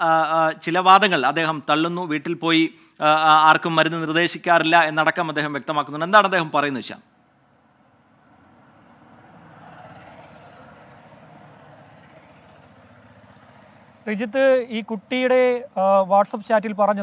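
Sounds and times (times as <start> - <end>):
man speaking: 0.0 - 7.0, 14.1 - 17.0.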